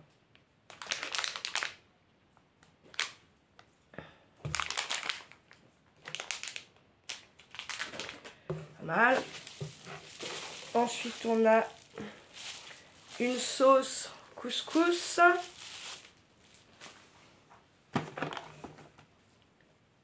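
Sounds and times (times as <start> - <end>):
food packaging crinkling: 0.7 - 1.8, 2.9 - 3.2, 4.5 - 17.0.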